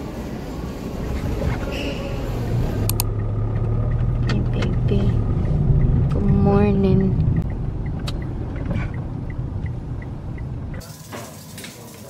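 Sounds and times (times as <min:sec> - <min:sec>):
car engine and road rumble: 0:00.0 - 0:10.8
turn signal ticking: 0:02.8 - 0:10.8.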